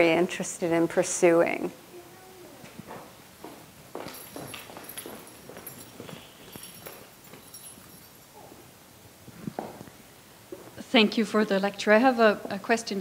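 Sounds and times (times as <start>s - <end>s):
footsteps: 2.6s - 8.6s, 9.2s - 10.8s
soft knocks and rustling: 2.6s - 8.6s, 9.2s - 10.8s
microphone handling noise: 9.2s - 10.0s.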